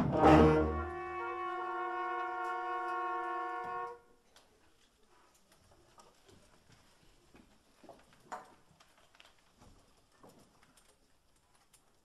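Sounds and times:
wind band brass chord: 0:00.0 - 0:04.0
faint small clicks and knocks: 0:04.2 - 0:12.0.

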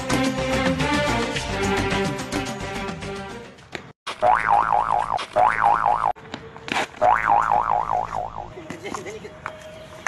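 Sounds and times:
cartoon boing spring effect: 0:04.2 - 0:06.1.

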